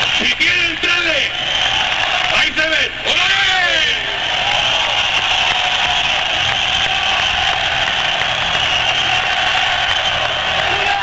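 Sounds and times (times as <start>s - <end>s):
crowd roar: 0.0s - 11.0s.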